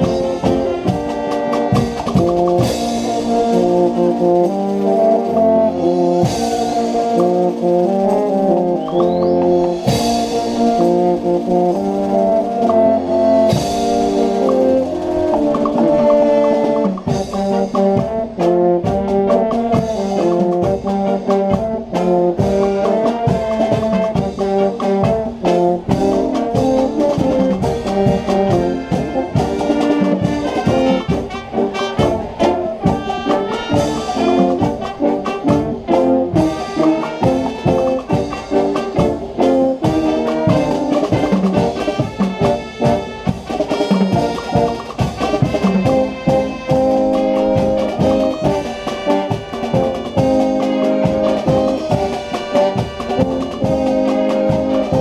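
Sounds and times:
marching drums beating: 0:00.0 - 0:55.0
trumpets and trombones playing: 0:00.0 - 0:55.0.

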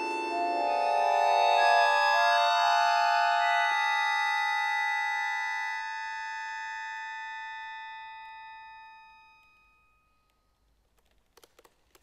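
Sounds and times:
accordion sustained chord: 0:00.0 - 0:08.8.

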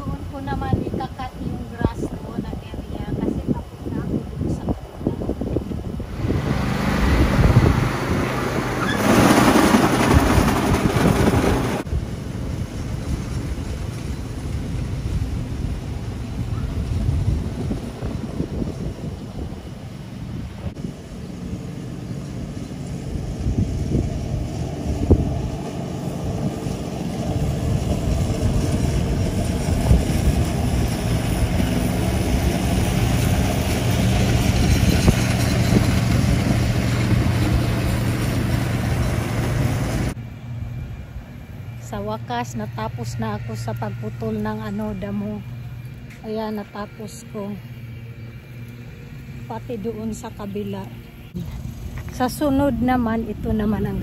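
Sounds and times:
riding lawn mower engine: 0:05.5 - 0:54.0.

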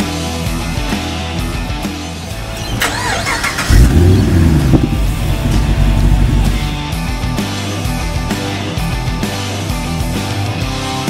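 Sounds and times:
rock music: 0:00.0 - 0:11.0
car engine starting and running: 0:02.3 - 0:07.1.

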